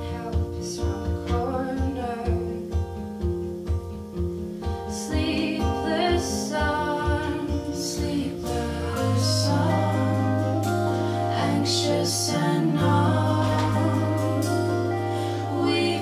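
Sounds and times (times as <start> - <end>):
person singing: 0.0 - 2.7, 4.9 - 16.0
electric guitar: 0.0 - 16.0
keyboard: 4.0 - 16.0
steady low pulse: 8.4 - 16.0.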